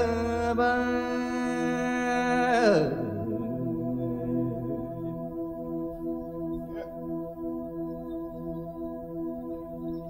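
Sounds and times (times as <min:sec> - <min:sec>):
band holding chant-like note: 0:00.0 - 0:06.0.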